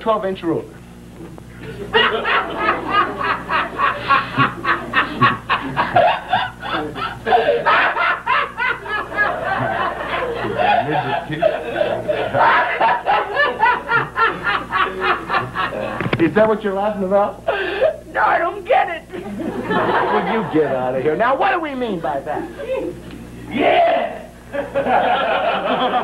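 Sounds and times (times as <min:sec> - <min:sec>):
person laughing: 0:01.8 - 0:16.0.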